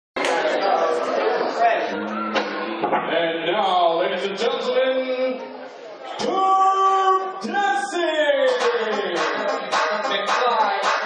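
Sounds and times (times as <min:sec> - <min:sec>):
crowd chatter: 0:00.2 - 0:11.0.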